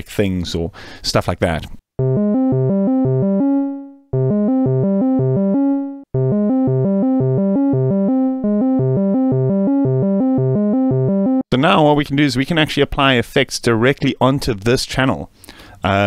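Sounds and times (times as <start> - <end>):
synthesizer playing fast short notes: 2.0 - 11.4.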